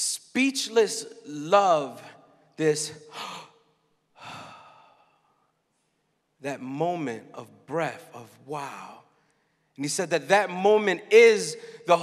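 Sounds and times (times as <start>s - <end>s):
man sighing into microphone: 4.2s - 5.3s.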